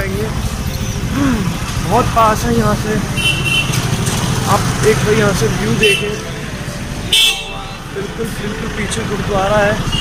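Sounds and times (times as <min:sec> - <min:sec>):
street traffic engine rumble: 0:00.0 - 0:10.0.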